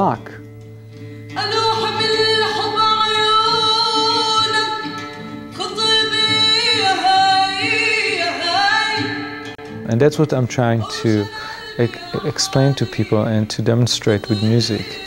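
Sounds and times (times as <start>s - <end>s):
woman singing solo: 1.3s - 9.6s, 10.8s - 13.2s.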